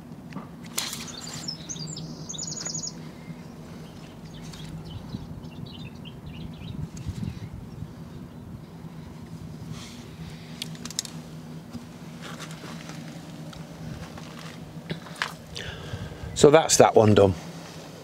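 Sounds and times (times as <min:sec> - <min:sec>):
faint low hum: 0:00.0 - 0:18.0.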